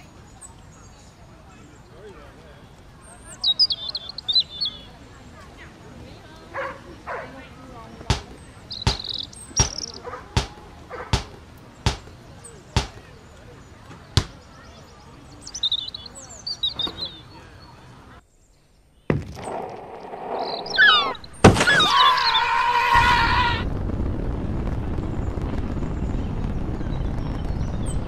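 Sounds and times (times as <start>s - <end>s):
basketball bouncing on court: 8.0s - 12.1s, 12.8s - 13.1s, 14.1s - 14.4s
sneaker squeaks: 16.6s - 17.3s.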